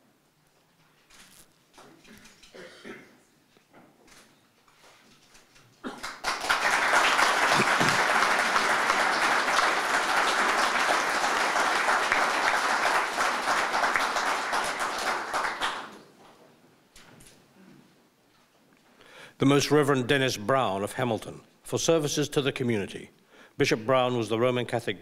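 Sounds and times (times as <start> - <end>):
audience applauding: 6.0 - 16.0.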